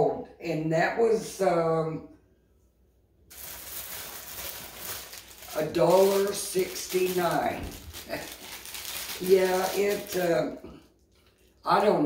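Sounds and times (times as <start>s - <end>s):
plastic bag rustling: 3.3s - 11.5s.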